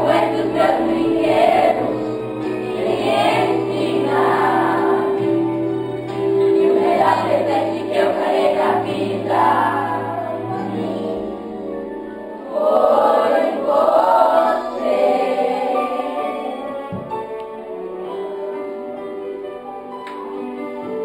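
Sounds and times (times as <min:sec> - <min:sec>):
children singing in chorus: 0:00.0 - 0:02.0, 0:02.7 - 0:05.3, 0:06.5 - 0:11.4, 0:12.4 - 0:16.9.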